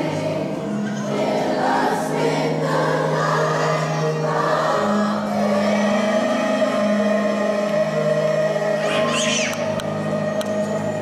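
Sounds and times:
choir holding long notes: 0.0s - 11.0s.

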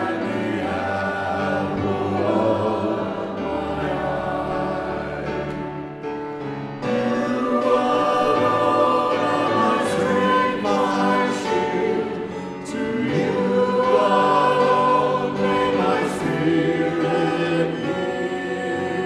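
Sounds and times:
group singing a hymn: 0.0s - 19.0s.

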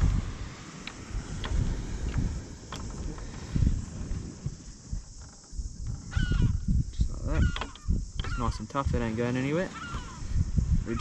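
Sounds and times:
wind buffeting microphone: 0.0s - 11.0s
faint sharp ticks: 0.7s - 3.5s.

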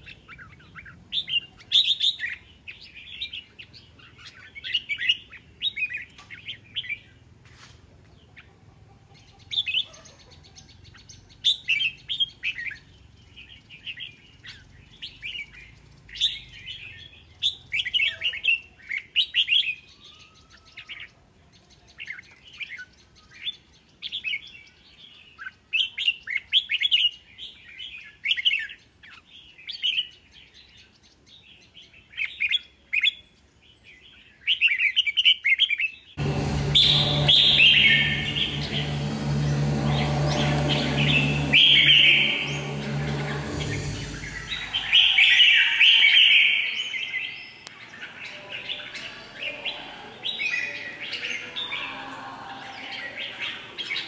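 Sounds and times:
bird singing warbling phrases: 0.0s - 7.3s, 8.2s - 54.0s.

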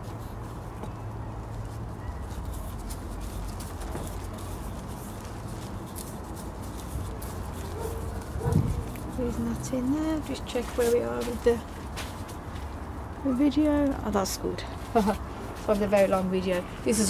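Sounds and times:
potting mix crackling: 0.0s - 17.0s.

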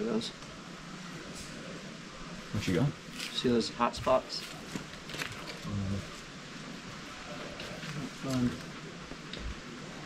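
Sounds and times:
outdoor background hiss: 0.0s - 10.0s.

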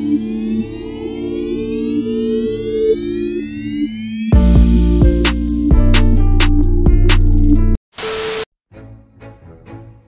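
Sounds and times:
rising synth sweep: 0.0s - 4.3s.

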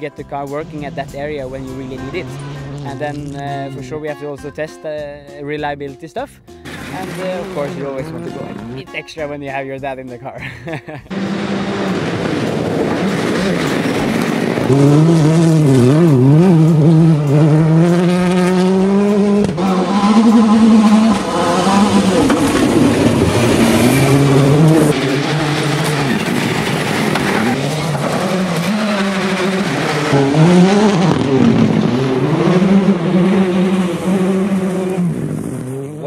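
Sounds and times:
rally car engine revving: 0.0s - 3.9s, 6.6s - 9.1s, 11.1s - 36.0s.

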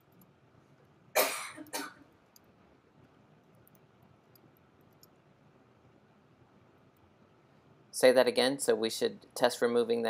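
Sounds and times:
person coughing: 1.2s - 2.1s.

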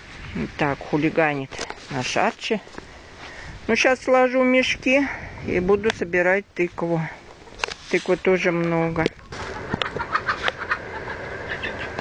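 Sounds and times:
chickens clucking: 9.0s - 12.0s.

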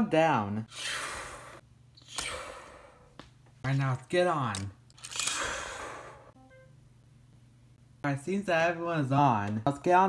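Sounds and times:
breathy exhale: 0.7s - 3.1s, 5.3s - 6.4s.

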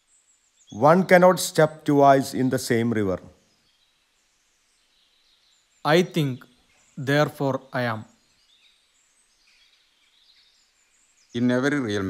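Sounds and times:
faint high hiss: 0.0s - 12.0s
person speaking: 5.9s - 8.1s.

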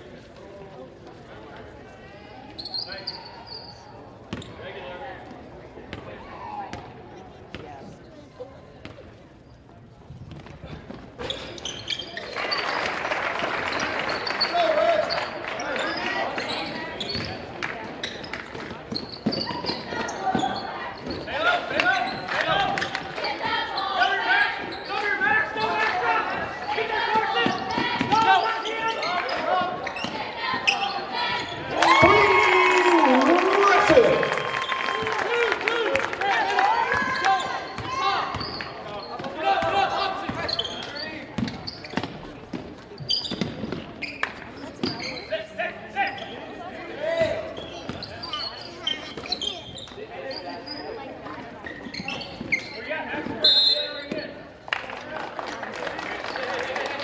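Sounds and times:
players and spectators voices: 0.0s - 57.0s.

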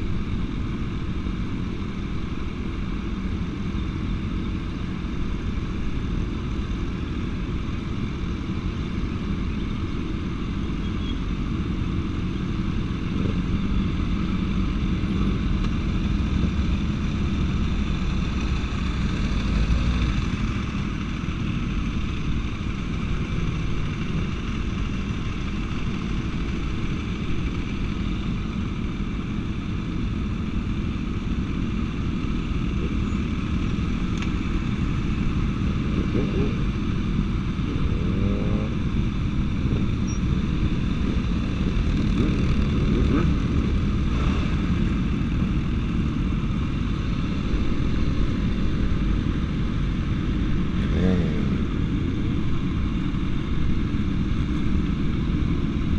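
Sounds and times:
motorcycle engines running: 0.0s - 55.9s.

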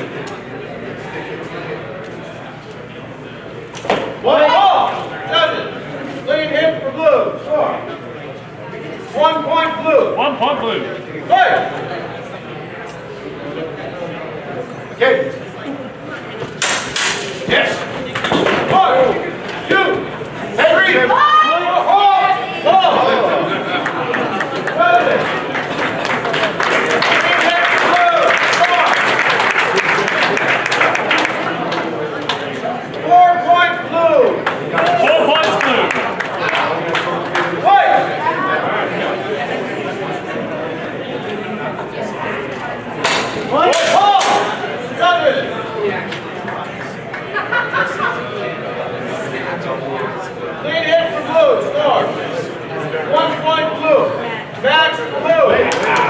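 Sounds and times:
people shouting: 20.8s - 23.4s.

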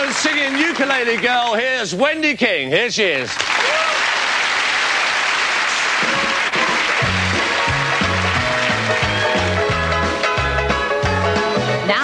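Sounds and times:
audience applause: 0.0s - 1.6s, 3.3s - 10.1s
band playing upbeat intro: 5.6s - 12.0s
bass line: 6.6s - 11.7s.

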